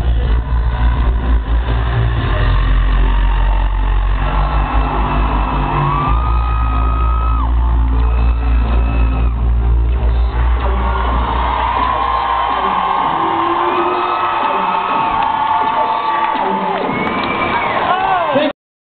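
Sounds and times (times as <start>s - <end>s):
live rock band through speakers: 0.0s - 18.5s.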